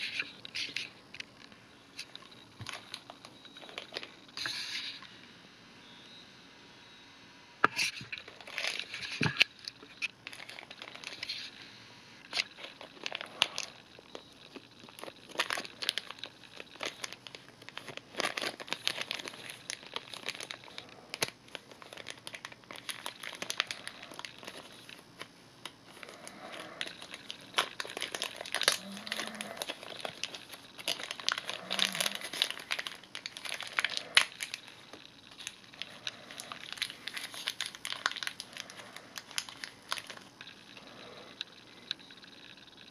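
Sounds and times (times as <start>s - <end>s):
plastic bag crinkling: 0.0s - 5.1s, 7.7s - 42.9s.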